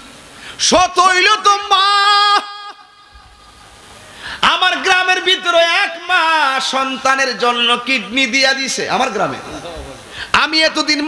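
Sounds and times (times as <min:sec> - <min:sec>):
man singing through loudspeakers: 0:00.6 - 0:03.0.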